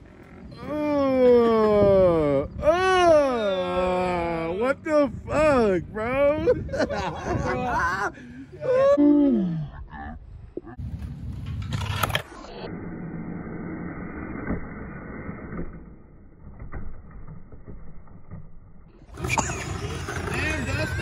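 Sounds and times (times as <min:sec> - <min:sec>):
skateboard wheels rolling on pavement: 0:19.0 - 0:21.0.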